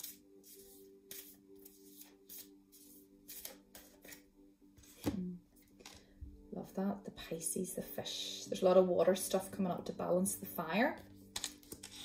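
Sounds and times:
cards shuffling: 0:00.0 - 0:04.2, 0:04.8 - 0:05.2, 0:11.1 - 0:12.0
quiet music of held notes: 0:00.0 - 0:12.0.

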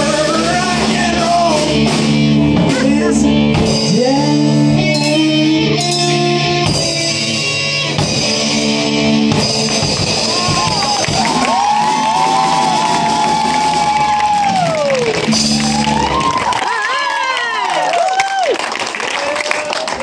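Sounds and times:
live rock band: 0:00.0 - 0:17.7
crowd cheering and whooping: 0:10.0 - 0:20.0.

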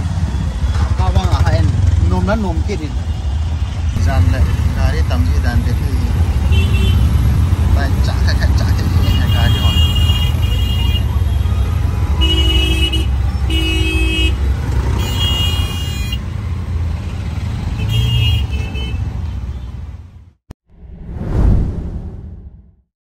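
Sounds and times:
auto-rickshaw engine running: 0:00.0 - 0:18.2
traffic rumble: 0:00.0 - 0:20.4
vehicle horns honking: 0:06.3 - 0:07.2, 0:08.8 - 0:16.2, 0:17.7 - 0:19.8.

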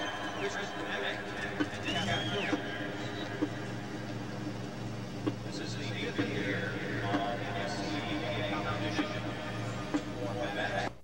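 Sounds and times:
crowd cheering and whooping: 0:00.0 - 0:03.5.

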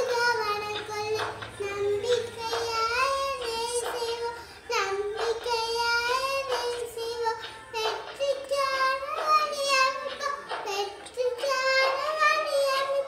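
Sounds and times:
girl singing: 0:00.0 - 0:13.0.

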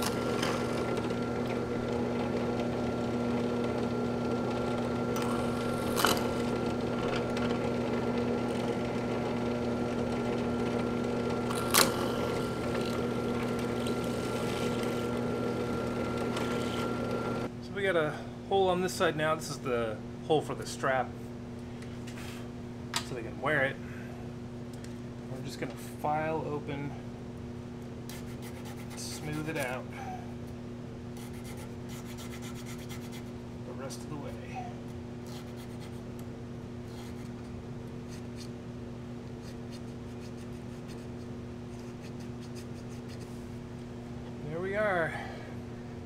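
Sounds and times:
low workshop hum: 0:00.0 - 0:46.0
person speaking: 0:33.6 - 0:34.8.

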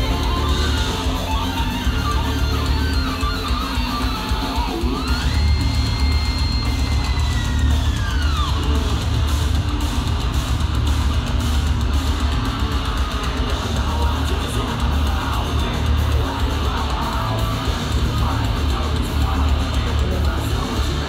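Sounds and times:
heavy metal band playing live: 0:00.0 - 0:21.0.

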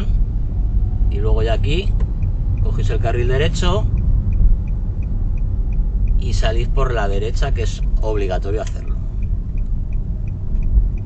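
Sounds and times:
car engine and tyres rumbling: 0:00.0 - 0:11.0
turn signal ticking: 0:00.0 - 0:11.0.

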